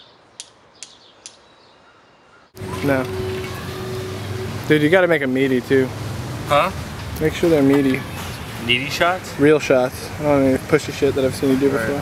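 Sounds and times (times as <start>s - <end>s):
small bird chirping: 0.0s - 2.6s
faint outdoor hiss: 0.0s - 12.0s.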